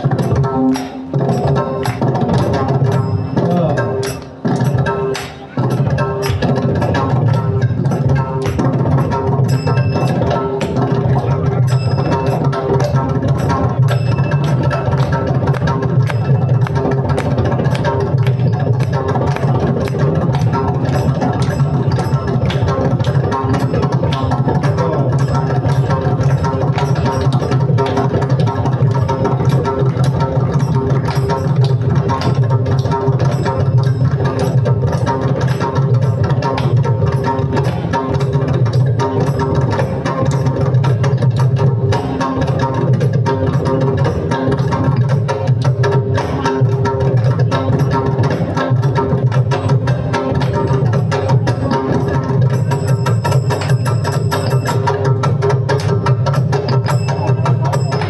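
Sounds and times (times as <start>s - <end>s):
barrel drum played by hand: 0.0s - 58.0s.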